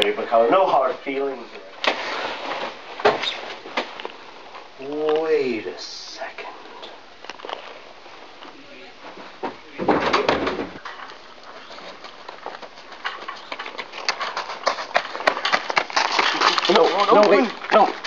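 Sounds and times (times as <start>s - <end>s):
crunching on gravel: 7.1s - 9.4s, 10.7s - 18.0s.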